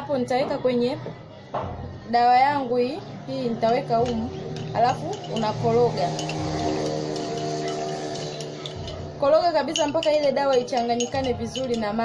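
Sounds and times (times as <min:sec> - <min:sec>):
background music held notes: 0:00.0 - 0:12.0
teaspoon clinking in mug: 0:04.0 - 0:12.0.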